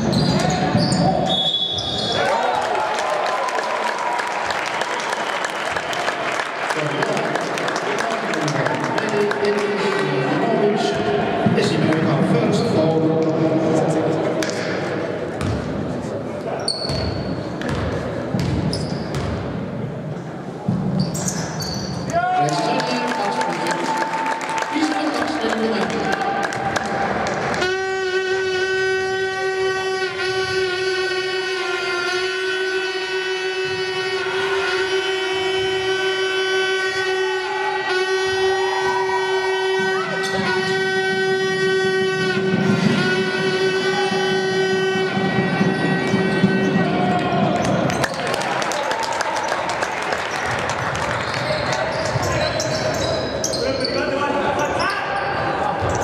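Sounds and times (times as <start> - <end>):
shoes squeaking on court: 0.0 - 2.2, 16.5 - 19.5, 20.7 - 22.1, 50.4 - 56.0
basketball dribbling: 15.4 - 15.8, 16.8 - 19.5.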